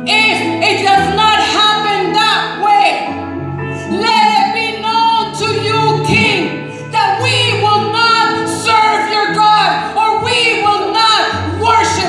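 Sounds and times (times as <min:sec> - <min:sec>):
electric guitar: 0:00.0 - 0:12.0
woman singing into microphone: 0:00.0 - 0:12.0.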